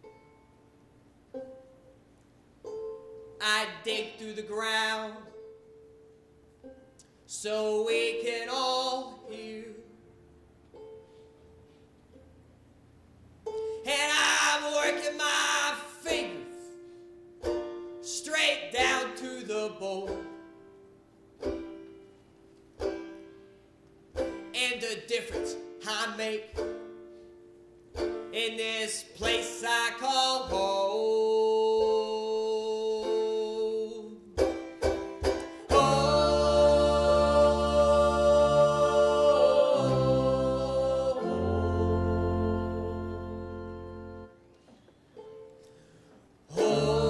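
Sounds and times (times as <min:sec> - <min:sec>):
plucked banjo notes: 0:00.0 - 0:12.6, 0:13.4 - 0:44.5, 0:45.1 - 0:47.0.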